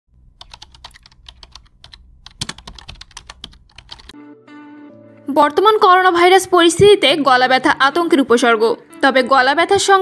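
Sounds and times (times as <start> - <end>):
rapid keyboard clicking: 0.3 - 4.1.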